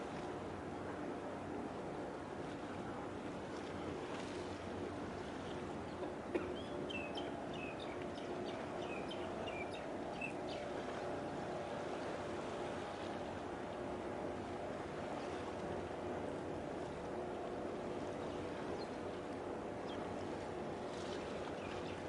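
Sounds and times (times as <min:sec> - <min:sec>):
water noise: 0:00.0 - 0:22.0
wind: 0:00.0 - 0:22.0.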